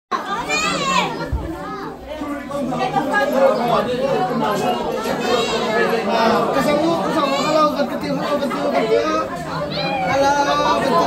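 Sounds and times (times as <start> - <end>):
children chattering: 0.1 - 11.0.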